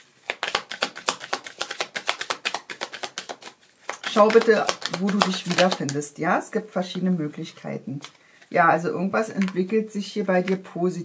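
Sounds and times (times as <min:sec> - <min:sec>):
cards being shuffled: 0:00.1 - 0:06.0, 0:07.9 - 0:08.2, 0:09.3 - 0:10.7.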